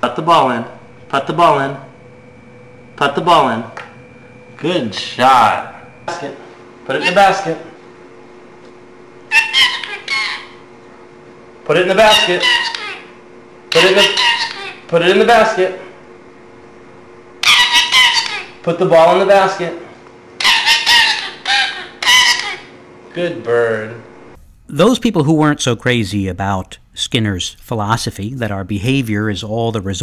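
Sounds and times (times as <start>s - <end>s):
parakeet calls: 9.3s - 10.6s, 12.0s - 13.1s, 13.7s - 14.9s, 17.4s - 18.6s, 20.4s - 22.7s.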